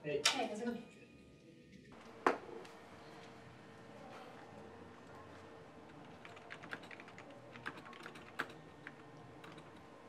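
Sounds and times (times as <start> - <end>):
keyboard typing clicks: 5.9 - 9.8.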